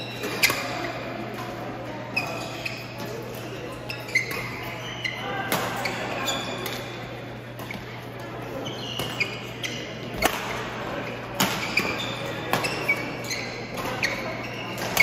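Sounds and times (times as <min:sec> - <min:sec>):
shoes squeaking on floor: 0:00.0 - 0:01.3, 0:02.0 - 0:15.0
rackets striking shuttlecock: 0:10.1 - 0:10.6, 0:11.4 - 0:13.0.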